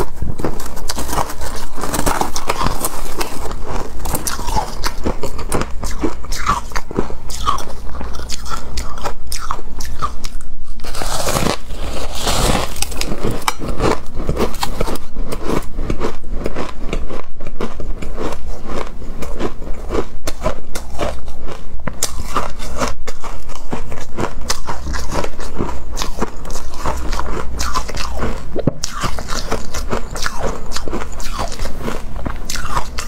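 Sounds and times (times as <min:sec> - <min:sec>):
ice being chewed crunching: 0:00.0 - 0:33.0.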